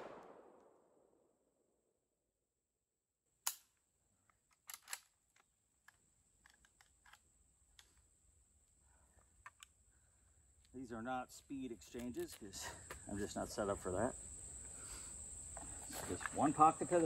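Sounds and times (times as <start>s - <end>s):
sharp crack: 0.0s - 0.8s
rifle metallic clicks and rattles: 3.4s - 8.0s.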